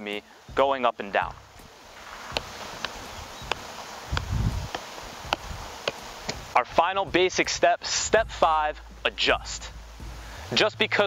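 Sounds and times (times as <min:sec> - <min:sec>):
outdoor hiss: 0:00.0 - 0:11.0
low rumble: 0:00.5 - 0:11.0
ball tapping on boot: 0:02.2 - 0:06.5.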